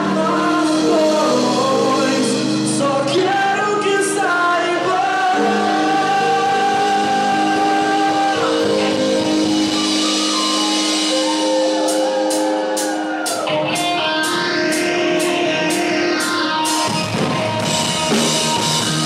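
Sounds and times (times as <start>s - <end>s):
bass and keyboard: 0.0s - 19.0s
bending electric guitar notes: 0.0s - 19.0s.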